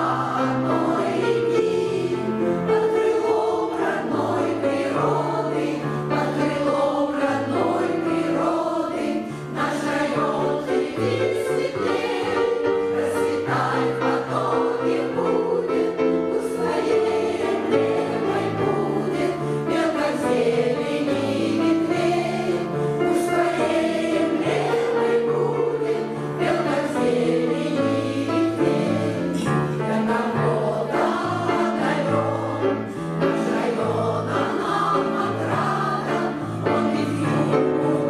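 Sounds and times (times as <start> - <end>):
women's choir singing: 0.0 - 38.0.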